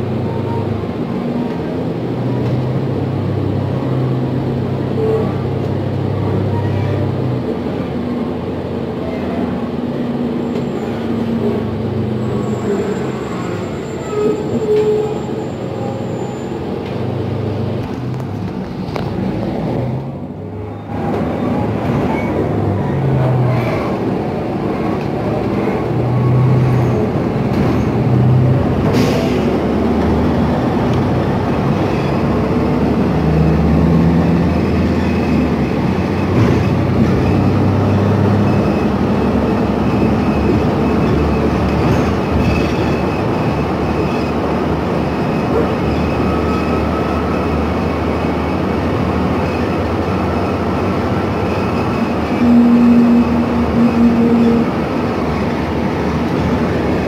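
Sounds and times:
bus engine running: 0.0 - 57.0
road noise: 0.0 - 57.0.

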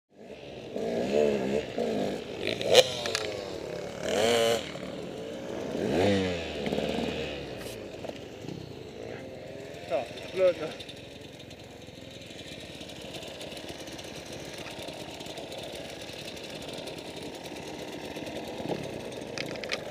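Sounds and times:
motorcycle engine revving: 0.1 - 19.9.

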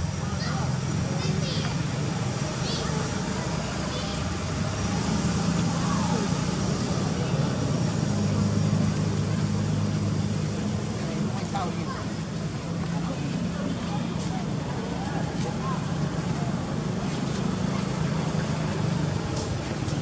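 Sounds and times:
low engine drone: 0.0 - 20.0
outdoor background noise: 0.0 - 20.0.

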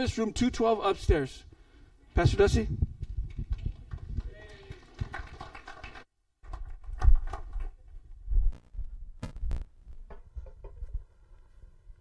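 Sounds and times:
microphone handling thumps: 8.3 - 11.0.

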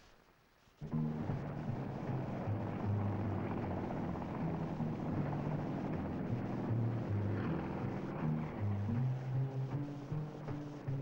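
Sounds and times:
helicopter rotor and engine: 0.9 - 10.9.

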